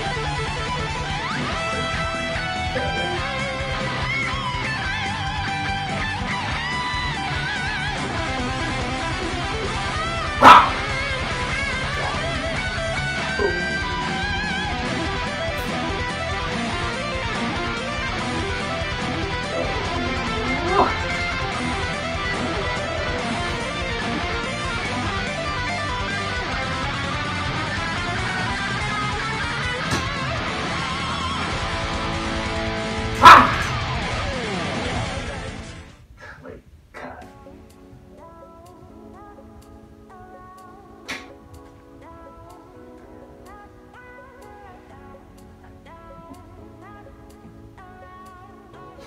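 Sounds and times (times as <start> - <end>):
heavy metal electric guitar: 0.0 - 36.0
backing track: 0.0 - 36.2, 37.0 - 49.0
loud yelp: 10.0 - 15.0, 19.0 - 25.3, 33.1 - 35.1.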